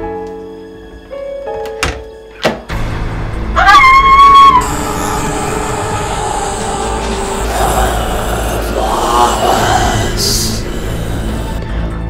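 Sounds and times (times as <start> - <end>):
film soundtrack music: 2.7 - 12.0
loud high-pitched tone: 4.6 - 11.6.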